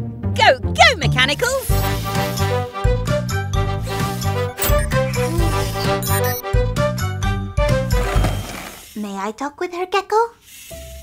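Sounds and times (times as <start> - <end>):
cartoon background music: 0.0 - 8.8.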